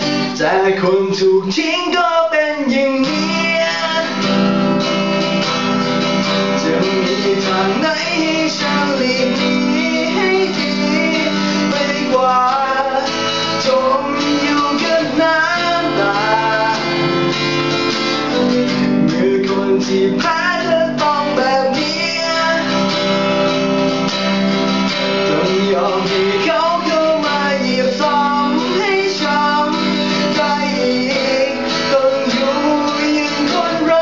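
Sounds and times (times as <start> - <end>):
man singing pop ballad: 0.0 - 24.0, 25.0 - 34.0
acoustic guitar strumming: 0.0 - 34.0.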